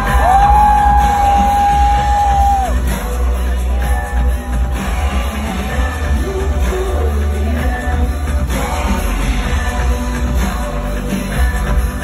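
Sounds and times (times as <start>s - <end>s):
heavy bass: 0.0s - 12.0s
live pop concert music: 0.0s - 12.0s.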